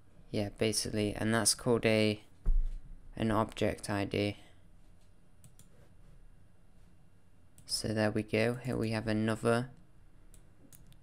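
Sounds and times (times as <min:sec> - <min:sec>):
faint low room hum: 0:00.0 - 0:11.0
computer mouse clicks: 0:05.4 - 0:05.9, 0:10.3 - 0:11.0.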